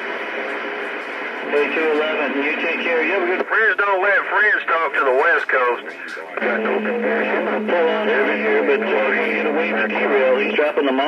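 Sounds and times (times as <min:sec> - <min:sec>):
voice through radio speaker: 0:01.4 - 0:11.0.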